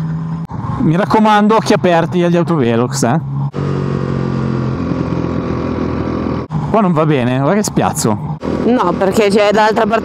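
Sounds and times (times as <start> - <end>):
motorcycle engine running: 0.0 - 10.0
road noise: 0.0 - 10.0.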